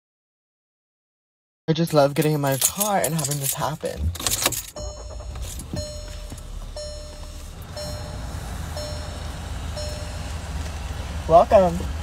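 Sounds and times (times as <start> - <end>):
car starting with clatter: 2.2 - 12.0
car warning chime dinging: 4.7 - 11.7
blower humming: 4.8 - 12.0.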